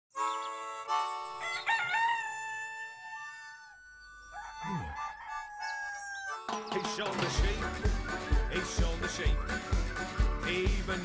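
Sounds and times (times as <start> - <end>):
rooster crowing: 1.4 - 6.5.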